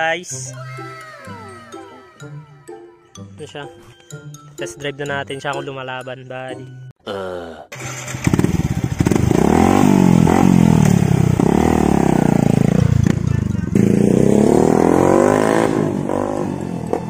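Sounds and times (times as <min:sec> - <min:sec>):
motorcycle engine revving: 0:07.8 - 0:17.0.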